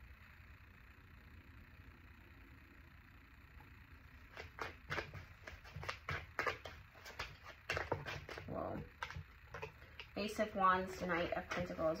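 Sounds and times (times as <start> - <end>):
cards being shuffled: 4.3 - 10.1.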